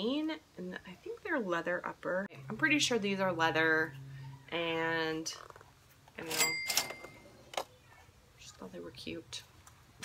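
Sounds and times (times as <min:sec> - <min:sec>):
cash register cha-ching: 0:06.2 - 0:07.4.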